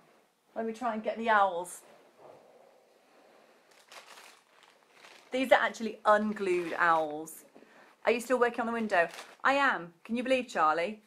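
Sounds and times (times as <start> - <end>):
packaging rustling and crinkling: 3.6 - 7.5, 8.7 - 9.5.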